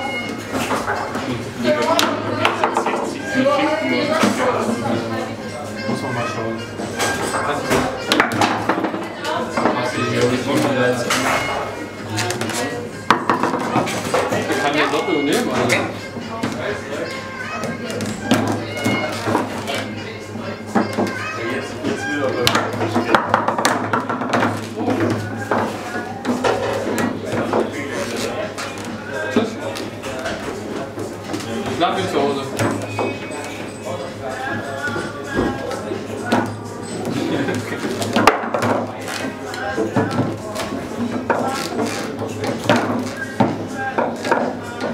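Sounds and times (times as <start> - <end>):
background music: 0.0 - 44.9
indistinct voices: 0.0 - 44.9
foosball ball clacking: 0.2 - 3.2, 6.8 - 17.0, 17.6 - 20.0, 20.6 - 33.9, 34.5 - 44.9.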